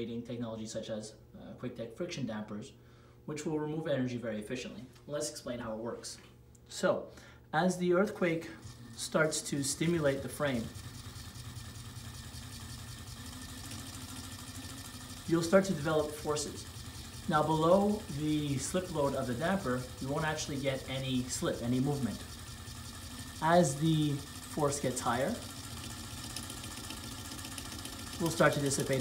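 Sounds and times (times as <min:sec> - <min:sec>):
small electric motor humming: 0:08.1 - 0:29.0.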